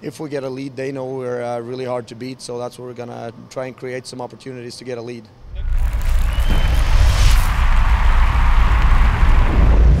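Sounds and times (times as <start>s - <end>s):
deep rumble: 5.4s - 10.0s
whoosh: 5.4s - 10.0s.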